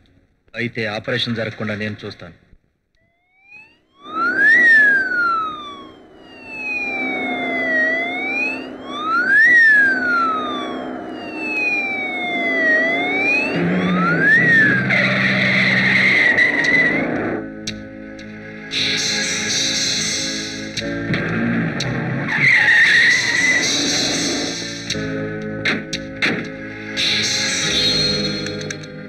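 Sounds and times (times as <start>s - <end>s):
wailing vehicle siren: 3.0s - 25.4s
moving car: 4.2s - 17.5s.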